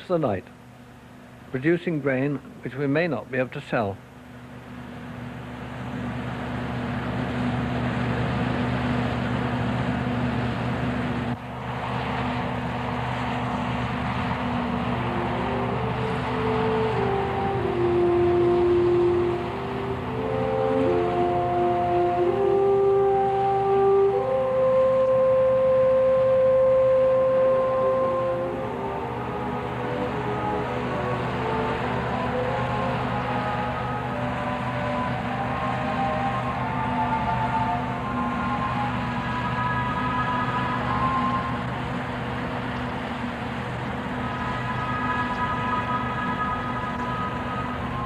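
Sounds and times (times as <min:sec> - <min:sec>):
combine harvester running: 0:00.0 - 0:48.0
slow held music notes: 0:04.2 - 0:48.0.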